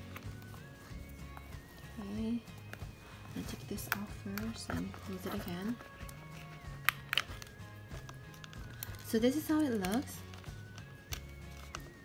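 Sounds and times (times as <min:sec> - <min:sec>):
soft background music: 0:00.0 - 0:12.0
wallet clasp clicking: 0:06.0 - 0:09.0.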